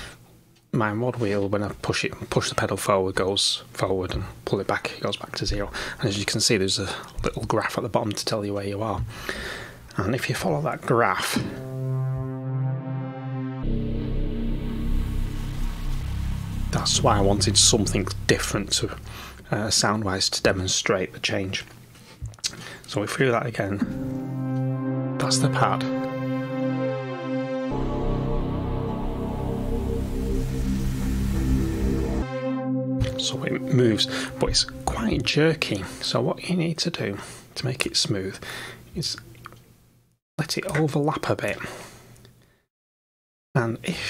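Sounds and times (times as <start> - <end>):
synthesizer holding a chord: 11.2 - 19.6, 23.8 - 36.8.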